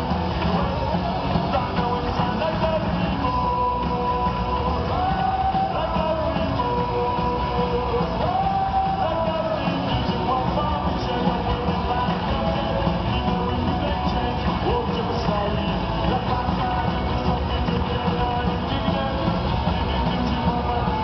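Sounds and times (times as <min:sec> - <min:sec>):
live punk rock band: 0:00.0 - 0:21.0.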